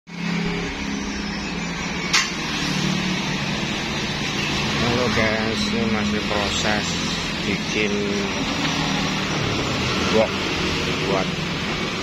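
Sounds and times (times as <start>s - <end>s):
road traffic: 0.1s - 12.0s
scooter engines passing: 0.1s - 12.0s
sharp click: 2.1s - 2.4s.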